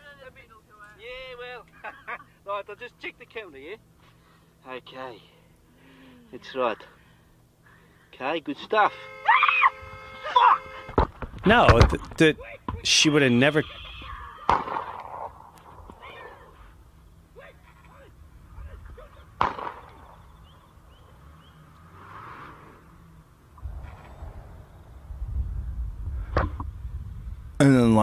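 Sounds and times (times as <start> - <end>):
rifle shots: 14.5 - 15.5, 19.4 - 20.2
low rumble: 22.5 - 28.0.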